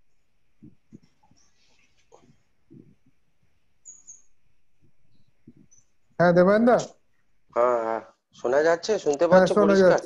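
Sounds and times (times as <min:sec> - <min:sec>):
microphone hiss: 0:00.0 - 0:10.0
high-pitched chirps: 0:03.8 - 0:04.3.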